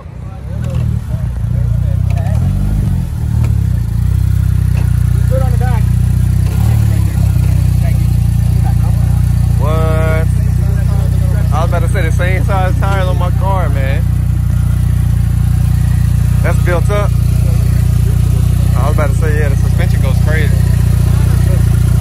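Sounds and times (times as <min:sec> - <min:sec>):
car engine idling: 0:00.0 - 0:22.0
voices chatting: 0:00.0 - 0:22.0.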